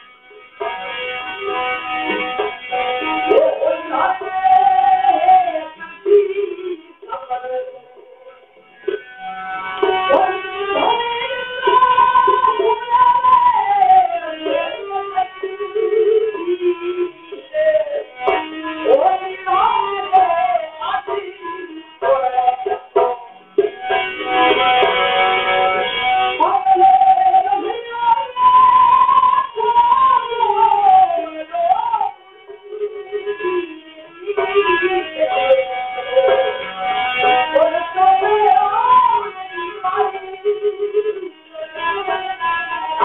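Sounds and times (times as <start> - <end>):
person singing folk song: 1.4 - 8.6, 9.8 - 23.8, 26.3 - 43.0.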